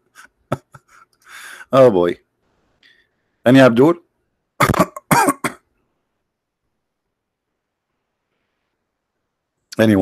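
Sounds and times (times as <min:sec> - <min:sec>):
man clearing his throat: 0:04.6 - 0:05.6
man coughing: 0:04.6 - 0:05.6.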